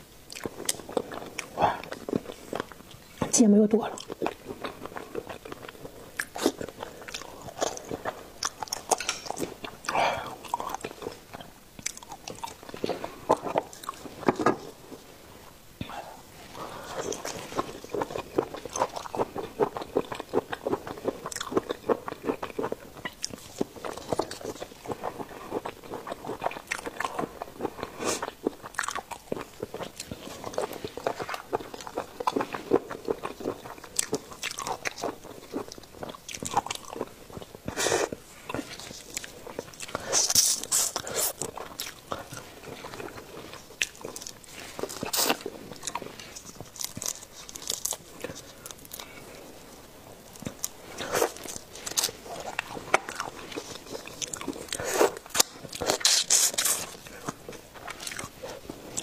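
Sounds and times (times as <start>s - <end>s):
wet chewing: 0.3s - 15.0s, 16.5s - 59.0s.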